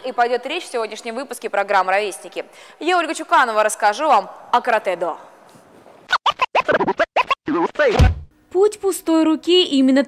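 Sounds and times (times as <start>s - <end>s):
record scratching: 6.1s - 8.3s.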